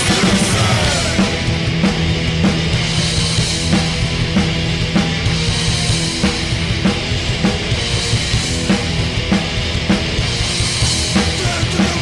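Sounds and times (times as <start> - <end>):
bass guitar: 0.0 - 12.0
distorted electric guitars: 0.0 - 12.0.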